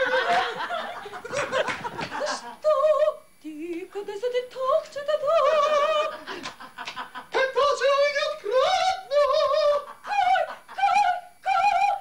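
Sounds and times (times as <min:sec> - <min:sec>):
high voice singing opera: 0:02.2 - 0:06.3, 0:07.4 - 0:12.0.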